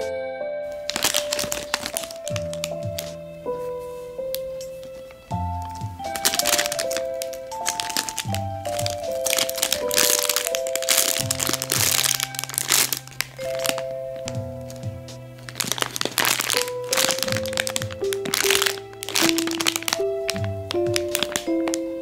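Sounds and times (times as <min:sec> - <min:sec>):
plastic bags crinkling: 0:00.7 - 0:03.2, 0:04.2 - 0:22.0
background music with bass line: 0:02.4 - 0:06.2, 0:13.1 - 0:15.8.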